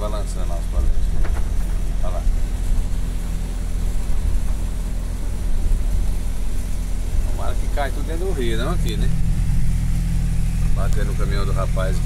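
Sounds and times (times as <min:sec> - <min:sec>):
heavy engine idling: 0:00.0 - 0:12.0.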